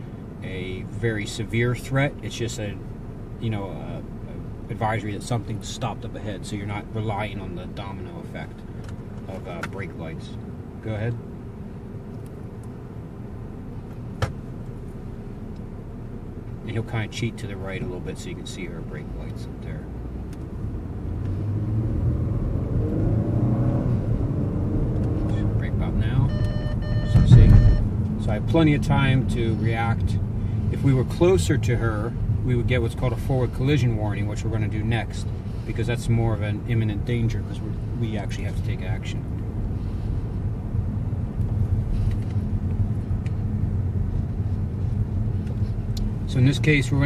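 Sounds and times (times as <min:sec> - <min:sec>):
car engine accelerating: 0:19.3 - 0:47.0.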